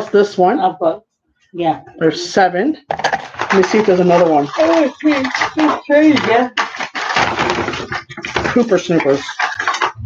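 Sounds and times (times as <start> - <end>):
woman's voice: 1.6 - 2.8, 3.5 - 6.5
metal spoons rustling in bag: 3.0 - 10.0.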